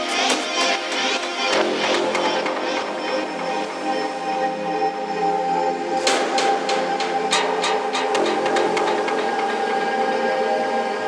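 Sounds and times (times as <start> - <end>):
synth pad: 0.0 - 11.0.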